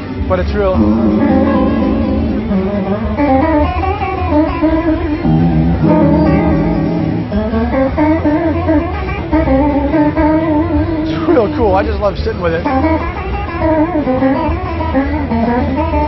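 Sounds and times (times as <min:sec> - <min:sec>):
electric guitar with chorus effect: 0:00.0 - 0:16.0.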